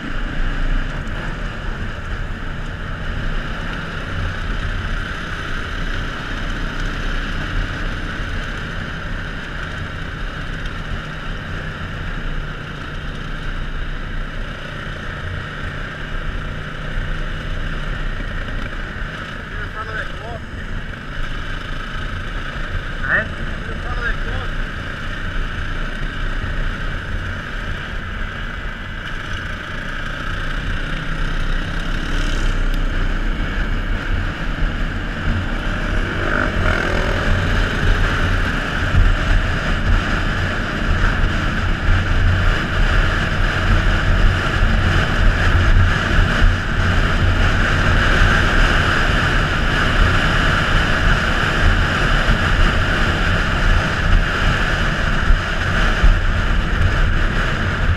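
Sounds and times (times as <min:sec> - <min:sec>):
motorcycle engine running: 0:00.0 - 0:57.9.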